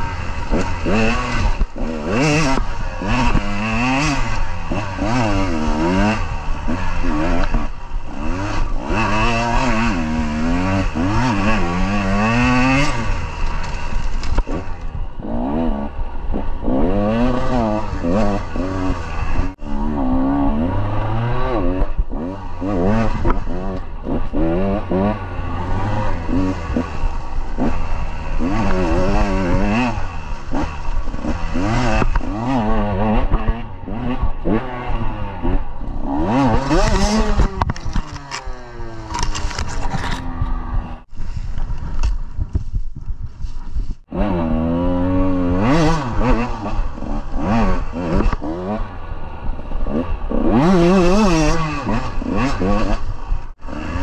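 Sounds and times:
dirt bike engine revving: 0.0s - 41.4s, 44.0s - 54.0s.

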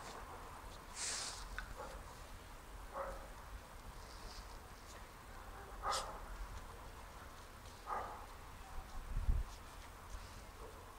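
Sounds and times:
puppies yipping faintly: 4.1s - 9.7s.

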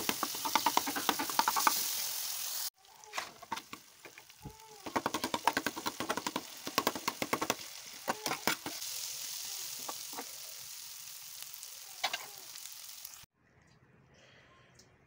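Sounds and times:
food sizzling in oil: 0.0s - 13.3s.

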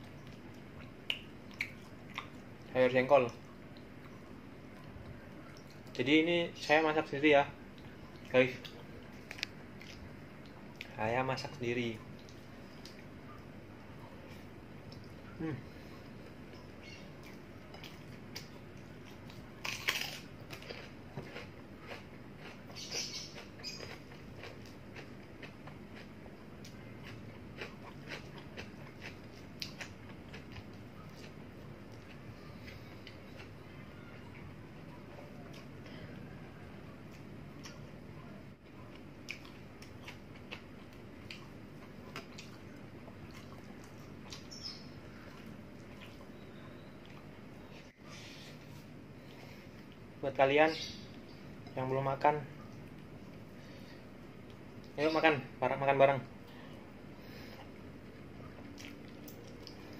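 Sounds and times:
person chewing food: 0.0s - 2.7s, 7.7s - 11.0s, 12.1s - 50.1s, 56.4s - 59.9s
soft clicks of eating by hand: 7.7s - 10.9s, 12.1s - 13.5s, 14.8s - 15.2s, 54.4s - 55.0s, 58.6s - 59.9s.

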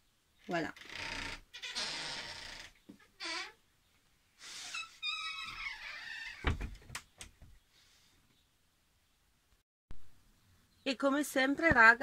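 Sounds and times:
door hinges squeaking: 0.8s - 3.6s, 4.6s - 7.4s
door shutting with a thump: 6.4s - 7.0s.

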